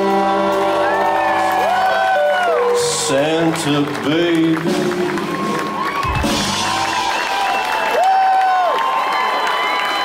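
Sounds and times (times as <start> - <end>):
crowd cheering and whistling: 0.0 - 10.0
drum hit: 6.0 - 7.1.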